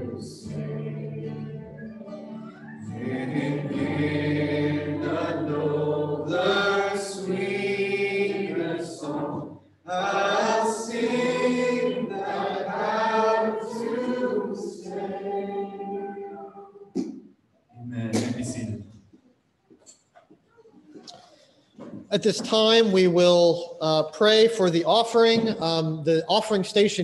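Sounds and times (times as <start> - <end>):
guitar: 0.0 - 6.1
congregation singing: 0.0 - 17.2.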